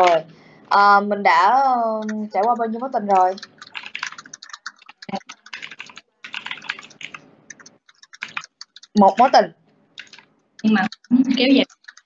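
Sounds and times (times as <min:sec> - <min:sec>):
rapid clicking and tapping: 0:01.8 - 0:12.0.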